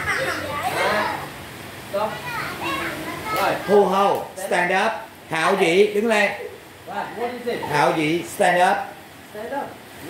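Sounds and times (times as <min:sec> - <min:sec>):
children talking: 0:00.0 - 0:04.7.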